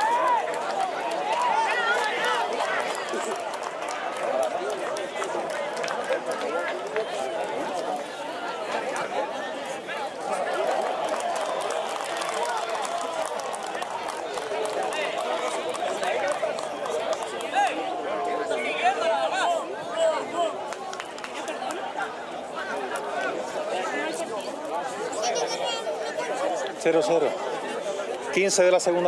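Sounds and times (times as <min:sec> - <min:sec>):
spectators chattering and calling: 0:00.0 - 0:29.0.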